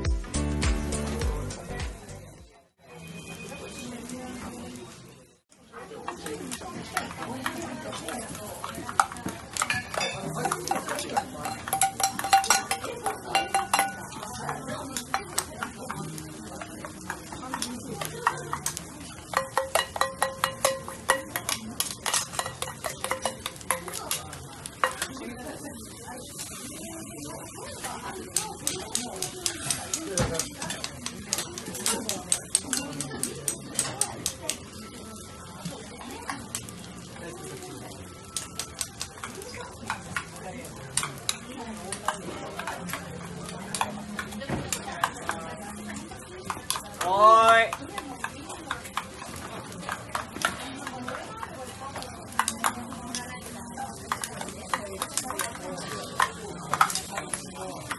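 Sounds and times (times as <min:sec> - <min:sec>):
hot griddle sizzling: 0:00.5 - 0:57.9
faint voices: 0:01.4 - 0:57.9
metal spoon clinking in steel bowl: 0:07.0 - 0:25.2, 0:28.3 - 0:34.5.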